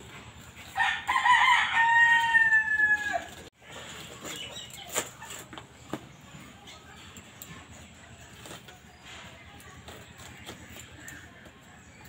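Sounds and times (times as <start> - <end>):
rooster crowing: 0.8 - 3.4.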